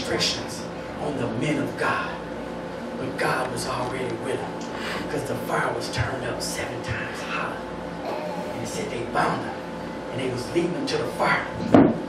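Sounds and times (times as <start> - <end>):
man speaking into a microphone: 0.0 - 2.3, 3.0 - 7.6, 8.6 - 11.7.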